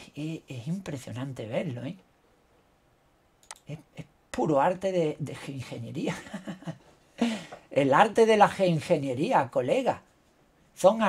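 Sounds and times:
man speaking: 0.0 - 2.0, 3.5 - 6.8, 7.7 - 10.1, 10.7 - 11.0.

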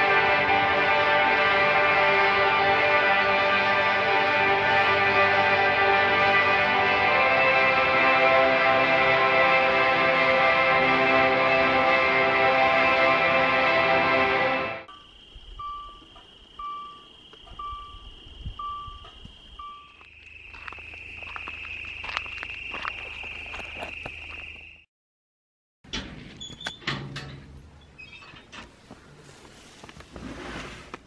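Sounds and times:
music: 0.0 - 14.9
short beeps: 14.9 - 20.1
night insects trilling: 14.9 - 24.9.

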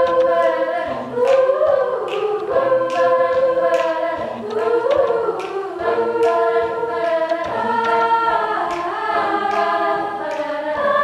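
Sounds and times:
a cappella group singing chords: 0.0 - 11.0
beatboxed kick and hi-hat: 0.0 - 11.0.

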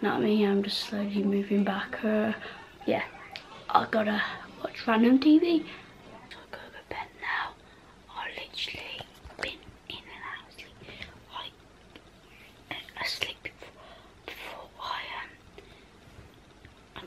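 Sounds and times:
girl whispering: 5.4 - 11.6, 12.7 - 15.4.

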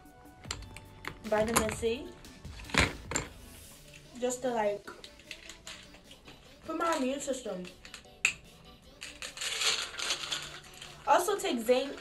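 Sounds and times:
tablets rattling in plastic bottle: 5.0 - 8.2, 9.0 - 12.0.

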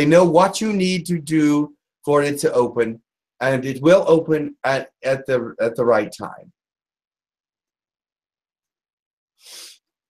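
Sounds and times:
man's sharp burst of breath: 9.4 - 9.8.

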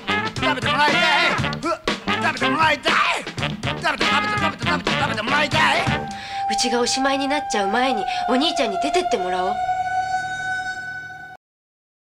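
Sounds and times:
steady held horn-like tone: 5.1 - 11.4.

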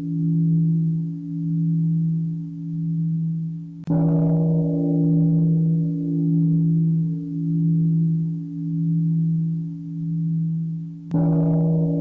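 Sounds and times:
large bell ringing: 11.2 - 12.0.

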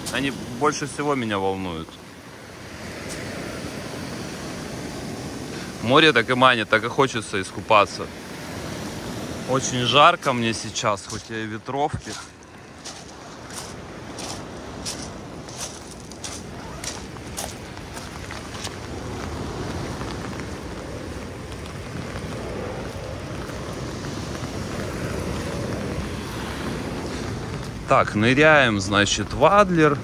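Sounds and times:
wind and surf rushing: 0.0 - 30.0
footsteps crunching on pebbles: 10.5 - 25.9
wind on microphone: 11.9 - 28.8.

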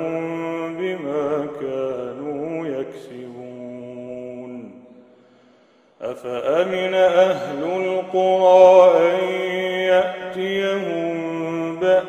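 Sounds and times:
man chanting melodically: 6.0 - 12.0.

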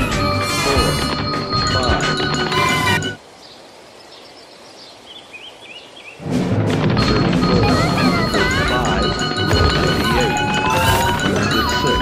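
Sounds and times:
small birds chirping: 0.0 - 6.3.

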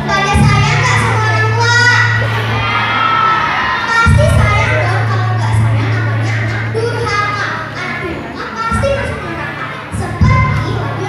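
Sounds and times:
children shouting together: 0.0 - 11.0.

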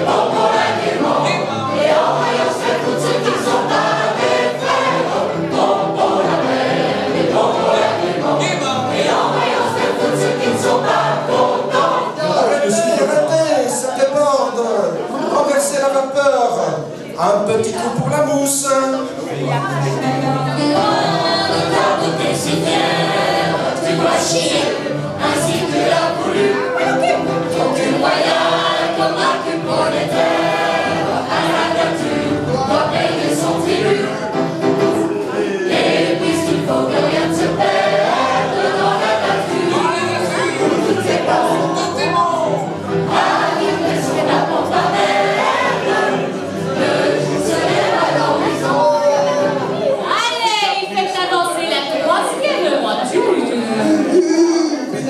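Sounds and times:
choir singing: 0.0 - 14.0, 19.0 - 55.0.

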